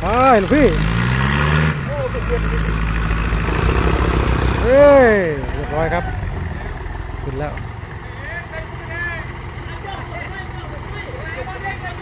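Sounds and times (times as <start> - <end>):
tractor diesel engine revving: 0.0 - 12.0.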